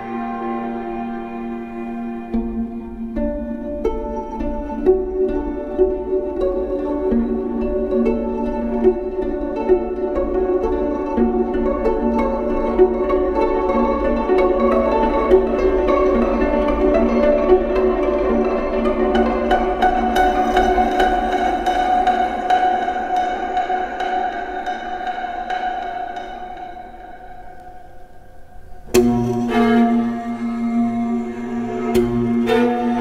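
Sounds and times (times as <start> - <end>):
bowed viola with electronics: 0.0 - 33.0.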